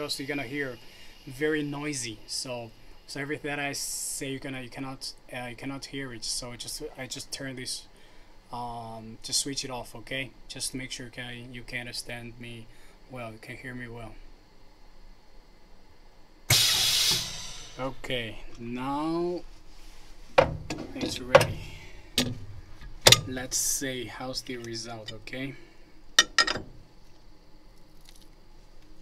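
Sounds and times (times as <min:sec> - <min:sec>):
loud hiss of rushing air: 0:00.0 - 0:03.2, 0:16.5 - 0:18.4
low room hum: 0:00.0 - 0:29.0.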